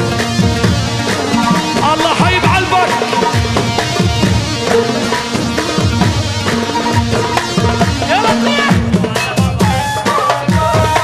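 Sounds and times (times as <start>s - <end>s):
booming drum beat: 0.0s - 11.0s
violin melody: 0.9s - 9.0s
ney flute melody: 0.9s - 11.0s.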